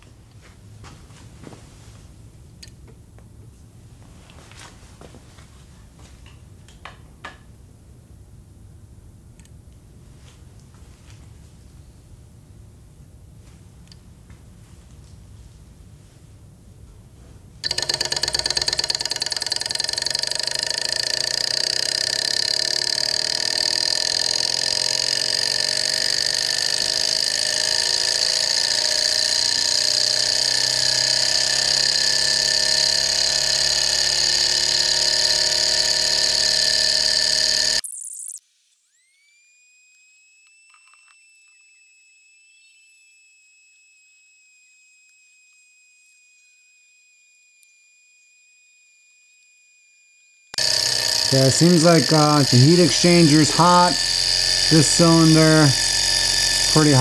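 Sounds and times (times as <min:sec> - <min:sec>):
small engine running: 0:17.6 - 0:37.8, 0:50.6 - 0:57.0.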